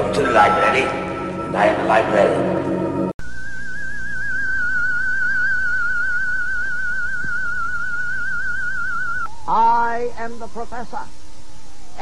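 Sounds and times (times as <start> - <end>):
wavering electronic tone: 0.0 - 9.8.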